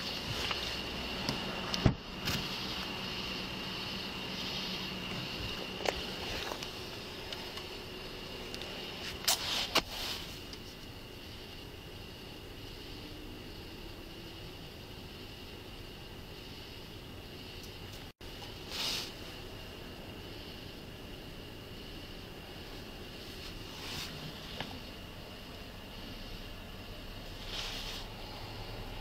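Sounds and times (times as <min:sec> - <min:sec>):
car interior running noise: 0:00.0 - 0:29.0
faint high whine: 0:00.0 - 0:29.0.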